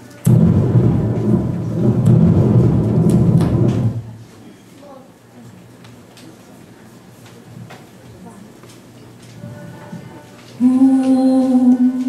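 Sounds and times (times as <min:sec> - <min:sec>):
thunder rumble over loudspeakers: 0:00.3 - 0:04.2.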